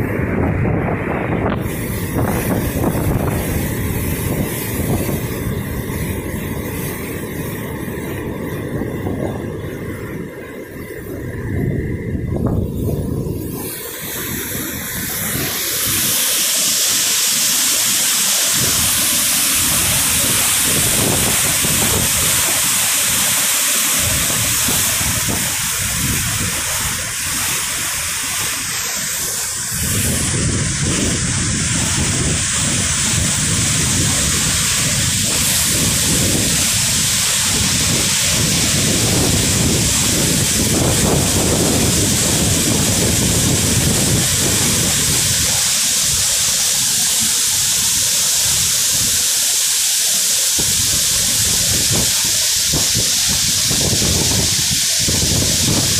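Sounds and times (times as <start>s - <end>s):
waterfall rushing: 0.0s - 55.9s.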